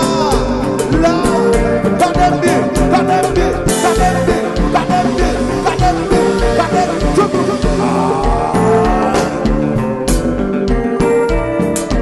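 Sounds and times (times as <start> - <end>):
band playing live: 0.0 - 12.0
bass: 0.0 - 12.0
kick drum: 8.4 - 12.0.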